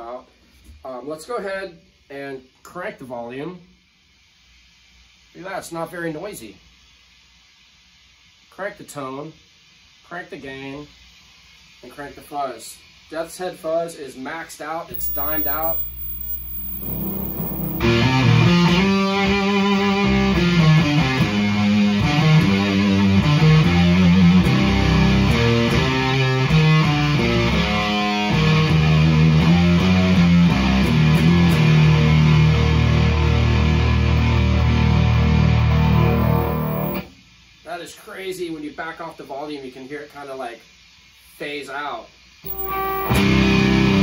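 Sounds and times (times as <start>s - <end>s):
faint hum: 14.9s - 20.3s, 33.3s - 37.1s, 42.4s - 43.8s
distorted fuzz guitar riff: 14.9s - 37.1s, 42.4s - 44.0s.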